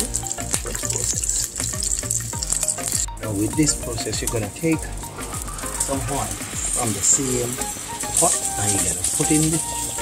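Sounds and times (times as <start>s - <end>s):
background music: 0.0s - 10.0s
chicken sizzling and crackling: 0.0s - 10.0s.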